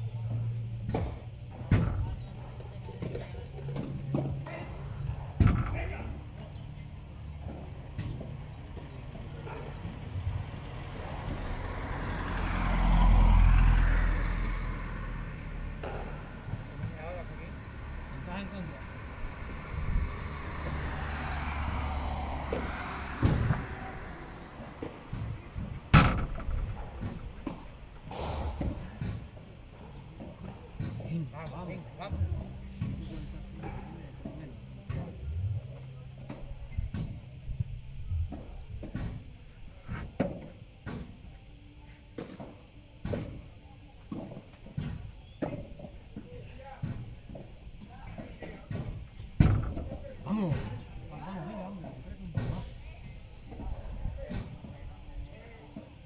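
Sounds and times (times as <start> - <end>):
heavy vehicle engine passing: 2.8 - 39.9.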